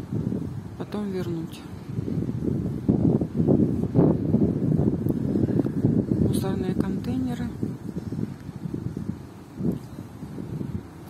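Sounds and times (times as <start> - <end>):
wind rumbling on microphone: 0.0 - 11.0.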